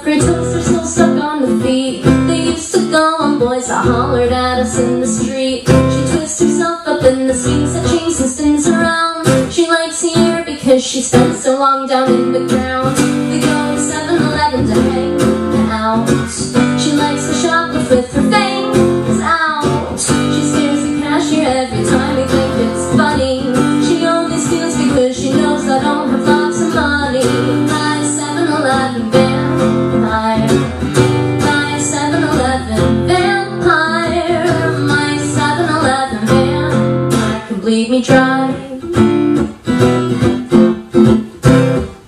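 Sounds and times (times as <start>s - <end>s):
woman singing: 0.0s - 39.5s
strummed acoustic guitar: 0.0s - 42.0s.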